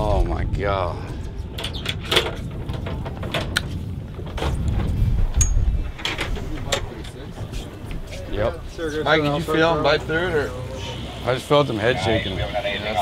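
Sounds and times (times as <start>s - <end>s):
low rumble aboard boat: 0.0s - 13.0s.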